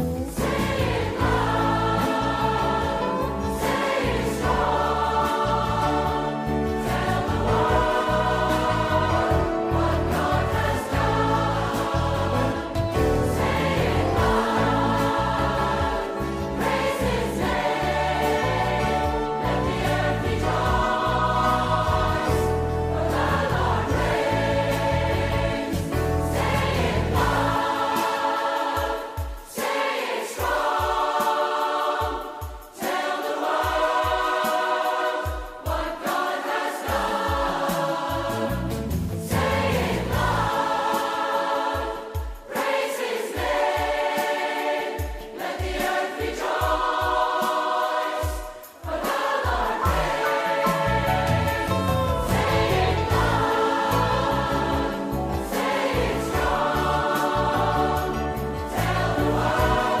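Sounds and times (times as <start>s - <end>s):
instrumental accompaniment: 0.0s - 60.0s
congregation singing: 0.1s - 60.0s.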